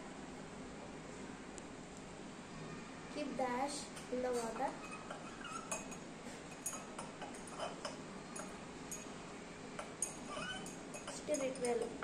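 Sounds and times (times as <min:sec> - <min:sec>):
glass rod clinking in beaker: 0:06.6 - 0:07.8, 0:08.4 - 0:09.1.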